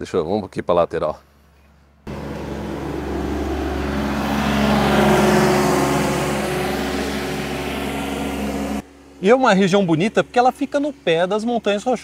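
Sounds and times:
vehicle engine passing: 2.1 - 9.2.

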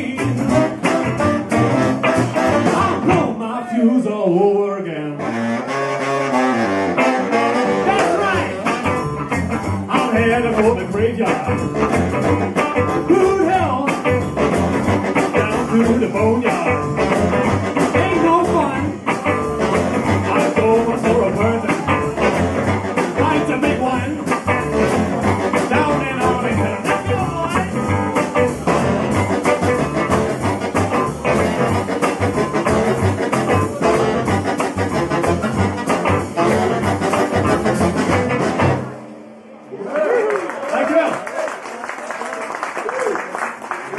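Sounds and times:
live band playing: 0.0 - 39.7.

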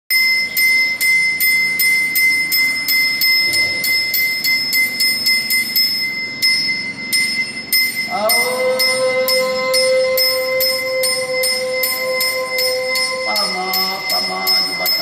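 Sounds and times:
metal hand bell ringing: 0.1 - 15.0.

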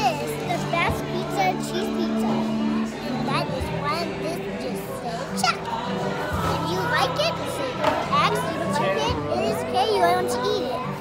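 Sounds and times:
girl talking: 0.0 - 2.4, 3.0 - 5.7, 6.4 - 11.0
background music: 0.0 - 11.0.

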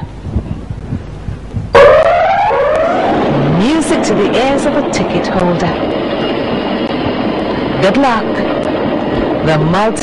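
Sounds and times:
faint low thumps: 0.0 - 6.1.

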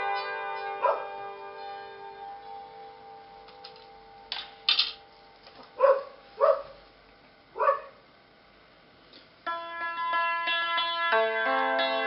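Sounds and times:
hammered dulcimer strings ringing: 0.0 - 5.1, 9.4 - 12.0.

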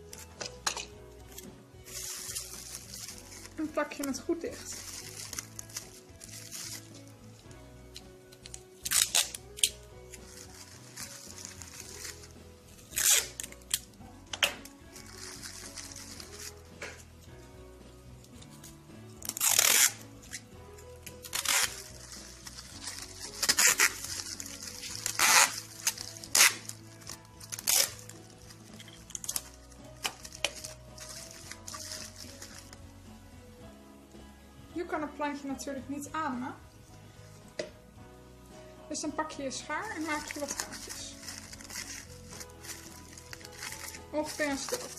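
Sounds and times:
background music: 0.0 - 44.9
plastic bag crinkling: 1.8 - 7.1, 8.9 - 13.9, 14.7 - 16.6, 21.1 - 32.8, 39.8 - 44.9
tape ripped off roll: 12.9 - 17.0, 19.2 - 20.0, 21.2 - 28.2.

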